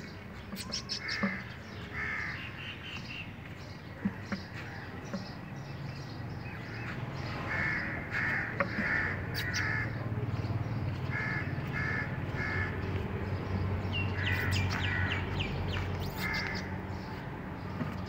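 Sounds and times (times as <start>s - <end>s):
crows cawing: 0.6s - 3.1s, 6.6s - 10.0s, 11.0s - 13.0s, 14.1s - 17.0s.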